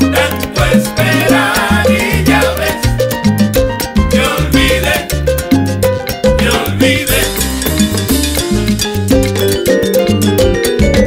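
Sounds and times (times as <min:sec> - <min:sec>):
bass line: 0:00.0 - 0:11.0
latin percussion: 0:00.0 - 0:11.0
piano and vibraphone figure: 0:00.0 - 0:11.0.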